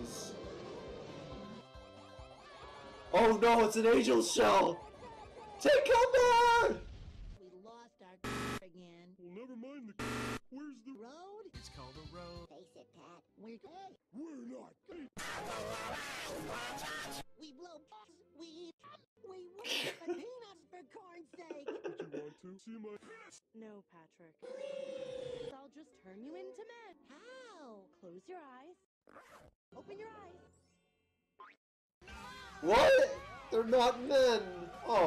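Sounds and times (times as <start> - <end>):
pitch-bent cartoon voices: 3.2 - 6.8, 24.4 - 25.5, 32.1 - 35.0.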